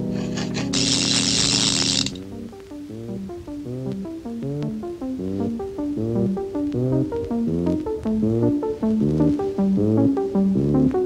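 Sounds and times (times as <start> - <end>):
clock mechanism whirring: 0.0 - 2.3
music chords and notes: 0.0 - 11.0.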